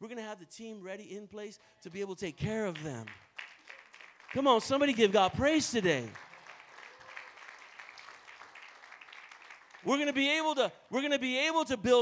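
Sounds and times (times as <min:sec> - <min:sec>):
person preaching: 0:00.0 - 0:03.2, 0:04.3 - 0:06.2, 0:09.8 - 0:12.0
congregation applauding: 0:02.7 - 0:10.6.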